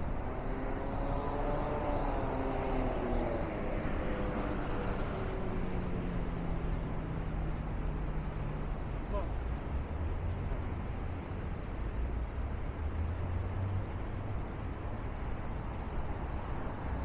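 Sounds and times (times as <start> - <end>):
passing engine hum: 0.0 - 9.2
city street traffic: 0.0 - 17.0.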